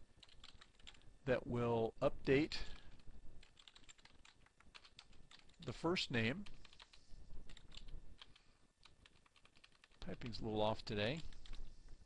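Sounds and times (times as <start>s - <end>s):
computer keyboard keystrokes: 0.2s - 1.0s, 3.4s - 5.6s, 7.5s - 10.3s.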